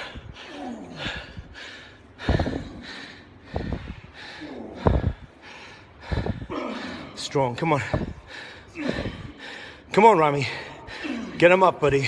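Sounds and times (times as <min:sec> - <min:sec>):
man breathing heavily: 0:00.0 - 0:12.0.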